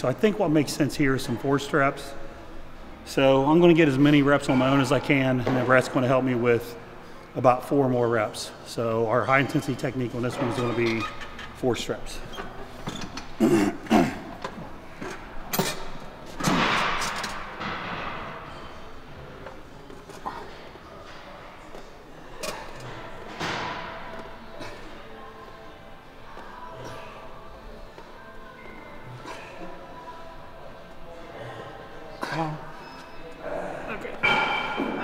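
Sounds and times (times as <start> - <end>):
background music: 0.0 - 17.7.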